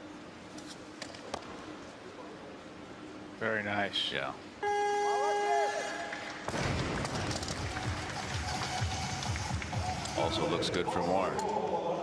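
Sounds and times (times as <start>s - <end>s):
electronic buzzer tone: 4.6s - 5.9s
crowd applause and cheering: 5.5s - 10.6s.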